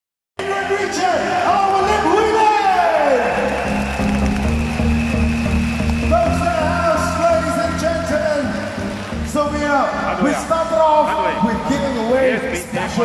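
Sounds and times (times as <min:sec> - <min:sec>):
loud event music with heavy bass: 0:00.4 - 0:13.0.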